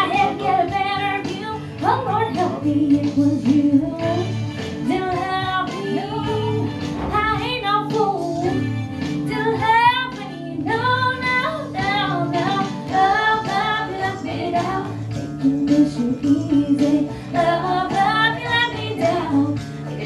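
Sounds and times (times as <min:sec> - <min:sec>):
girl singing country song: 0:00.0 - 0:20.0
instrumental accompaniment: 0:00.0 - 0:20.0.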